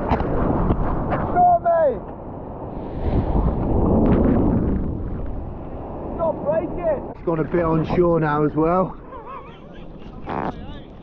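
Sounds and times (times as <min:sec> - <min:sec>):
wind buffeting microphone: 0:00.0 - 0:11.0
sea wave breaking: 0:02.5 - 0:10.5.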